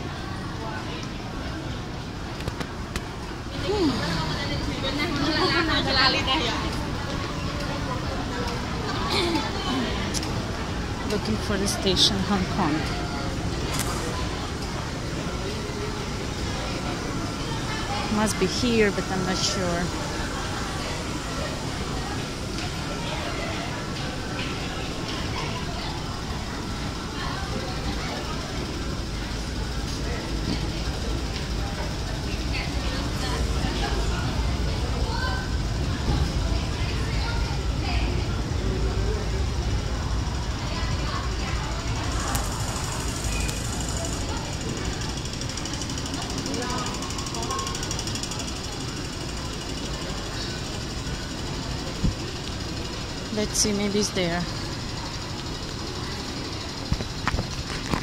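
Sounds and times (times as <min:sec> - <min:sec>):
indistinct chatter: 0:00.0 - 0:58.0
steady rumble and hum: 0:01.2 - 0:58.0
steady low rumble: 0:24.5 - 0:46.9.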